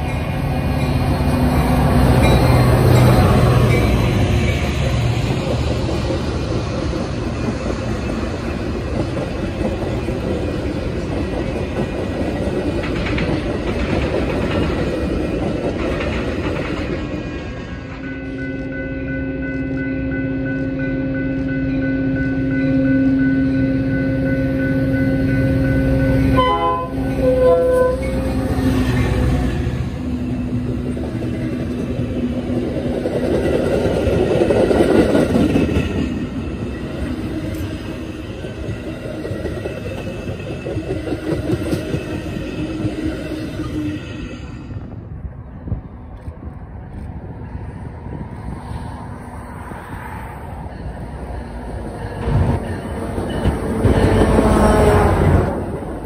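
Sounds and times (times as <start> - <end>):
train wheels rumbling on rails: 0.0 - 56.0
train horn: 18.6 - 28.5, 53.7 - 55.6.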